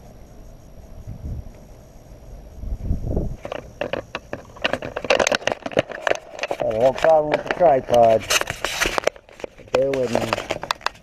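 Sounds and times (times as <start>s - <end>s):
microphone handling rumble: 2.6s - 11.0s
camera tripod clicks and rattles: 3.4s - 11.0s.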